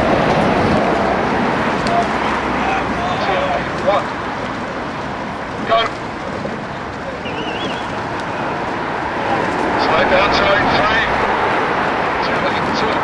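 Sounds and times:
outdoor rushing noise: 0.0 - 13.0
voices calling: 1.6 - 13.0.

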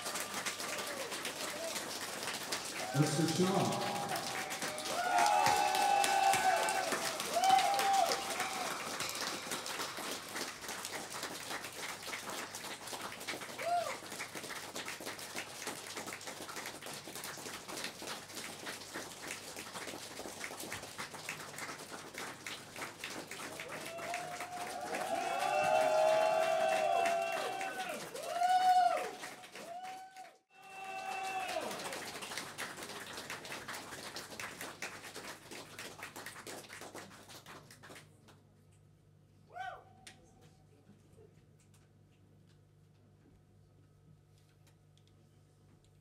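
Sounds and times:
audience clapping: 0.0 - 38.5
audience cheering: 2.6 - 10.6, 13.6 - 14.0, 23.6 - 32.3
people shouting: 3.7 - 8.7, 30.6 - 31.7.

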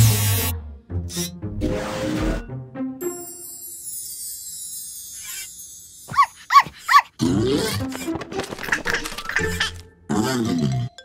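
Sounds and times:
background music: 0.0 - 4.8, 7.1 - 11.0
cartoon character yips: 6.1 - 7.9
cartoon grumbling vocal sound: 10.1 - 11.0.

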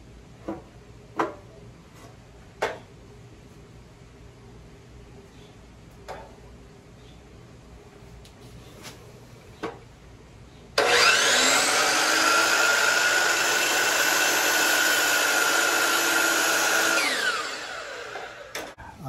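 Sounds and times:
miter saw whining: 10.8 - 18.8.

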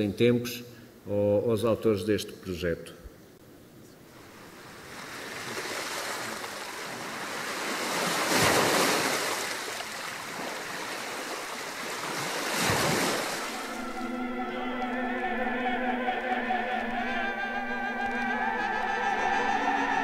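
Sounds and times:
ocean waves surf: 4.1 - 16.9.

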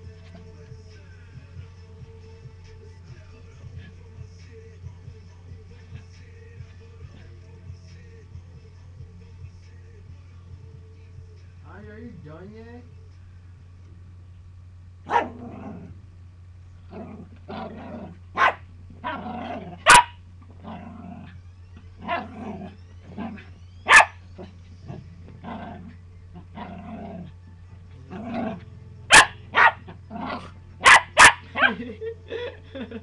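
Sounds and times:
small dog barking: 15.1 - 15.7, 18.3 - 20.8, 22.0 - 22.6, 23.2 - 24.5, 28.1 - 31.8.

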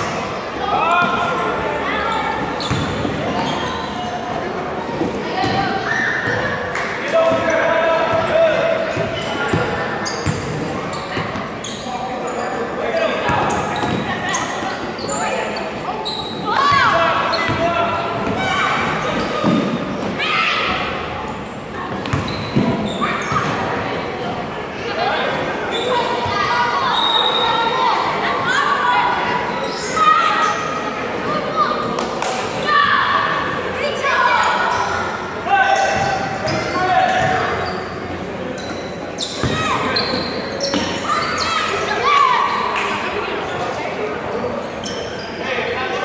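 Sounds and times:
people talking and calling out: 0.0 - 46.0.

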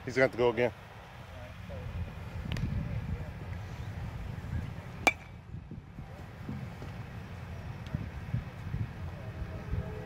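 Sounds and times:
wind rumble: 1.5 - 10.0
sharp crack with metallic ring: 5.1 - 5.4.

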